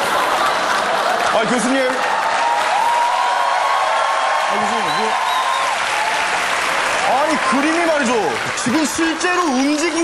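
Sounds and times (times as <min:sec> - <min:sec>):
studio audience applauding: 0:00.0 - 0:10.0.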